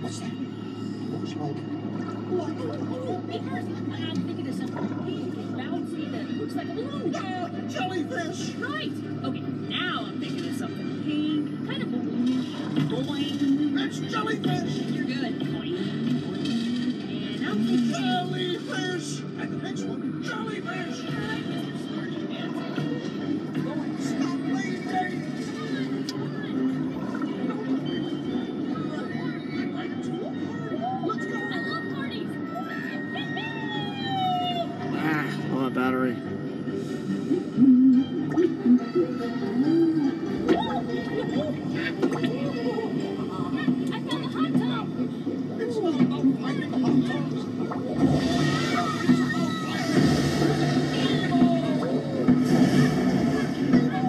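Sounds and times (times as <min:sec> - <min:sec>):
ride soundtrack music: 0:07.1 - 0:54.0.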